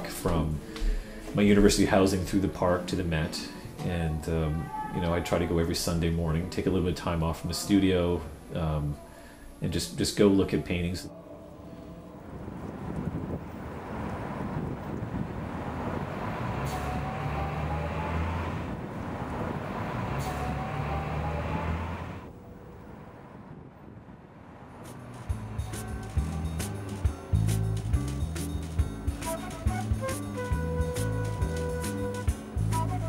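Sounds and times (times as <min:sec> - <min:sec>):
music: 0:00.0 - 0:12.5, 0:24.9 - 0:33.0
faint rising whines: 0:11.1 - 0:27.3
street traffic: 0:11.1 - 0:33.0
heavy vehicle engine hum: 0:12.0 - 0:33.0.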